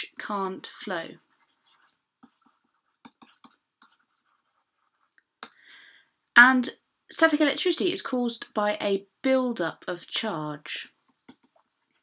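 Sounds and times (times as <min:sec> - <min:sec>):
stylus tapping on tablet screen: 0:02.2 - 0:04.4.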